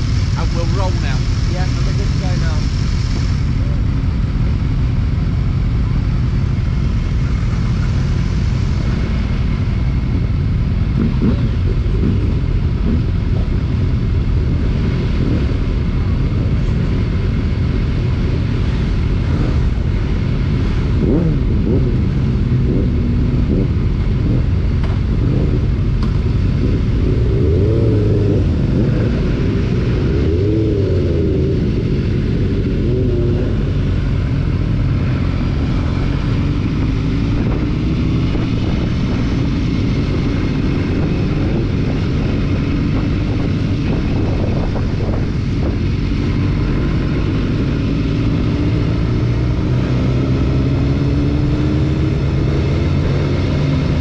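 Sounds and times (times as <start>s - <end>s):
motorcycle engines idling: 0.0s - 49.4s.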